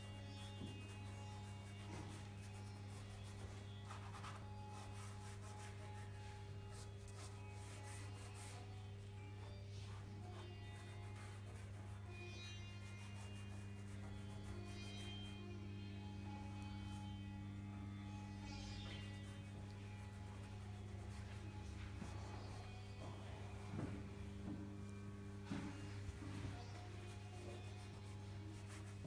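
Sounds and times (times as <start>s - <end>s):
steady low hum: 0.0s - 29.0s
pastel scratching on paper: 0.1s - 8.7s, 9.4s - 12.1s, 26.7s - 29.0s.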